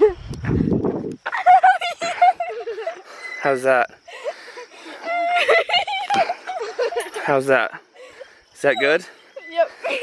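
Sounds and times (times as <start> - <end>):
girl laughing and squealing: 1.2 - 3.5, 4.1 - 7.2.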